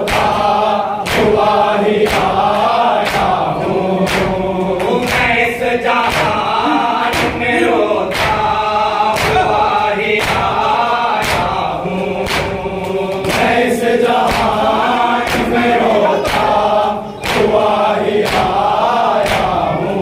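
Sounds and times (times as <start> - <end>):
palms slapping chests: 0.0 - 19.6
men chanting in unison: 0.0 - 20.0.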